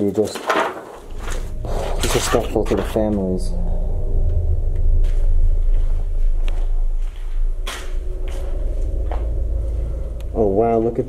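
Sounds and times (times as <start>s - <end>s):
steady low rumble: 0.8s - 11.0s.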